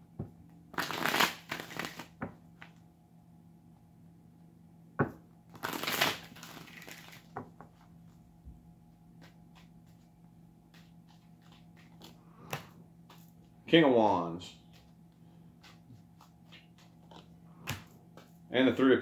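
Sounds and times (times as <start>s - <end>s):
cards riffle shuffling: 0.8s - 2.2s, 5.5s - 7.3s, 10.7s - 13.4s, 15.6s - 18.4s.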